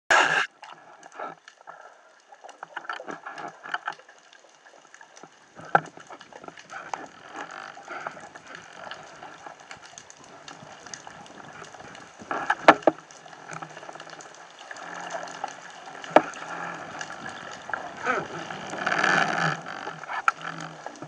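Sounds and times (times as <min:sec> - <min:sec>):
underwater clicks and knocks: 0:00.1 - 0:21.0.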